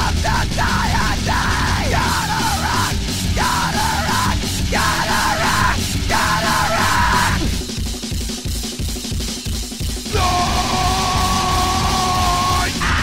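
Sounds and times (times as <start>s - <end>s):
drums and bass pounding: 0.0s - 13.0s
thrash band playing: 0.0s - 13.0s.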